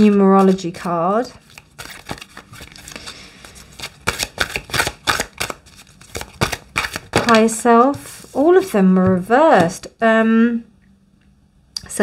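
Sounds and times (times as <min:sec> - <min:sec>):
cards rustling and sliding: 0:00.0 - 0:08.8.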